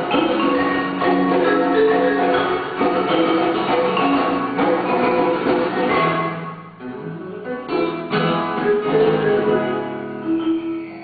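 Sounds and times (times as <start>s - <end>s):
acoustic guitar plucking: 0.0s - 11.0s.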